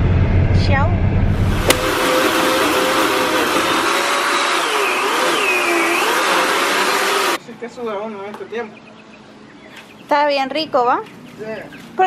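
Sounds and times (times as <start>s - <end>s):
electric trimmer motor whining: 1.4s - 7.4s.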